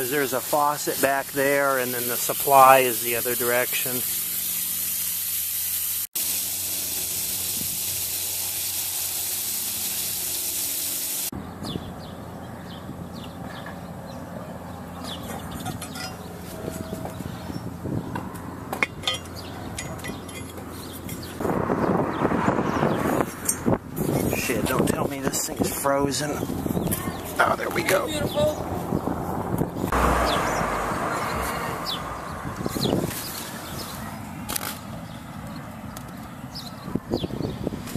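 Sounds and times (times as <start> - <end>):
water spraying from leaking pipe: 0.0 - 11.3.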